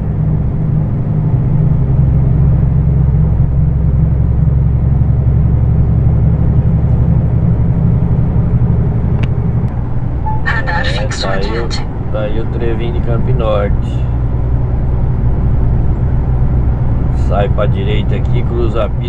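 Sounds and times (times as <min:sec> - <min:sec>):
truck engine and tyre drone: 0:00.0 - 0:19.0.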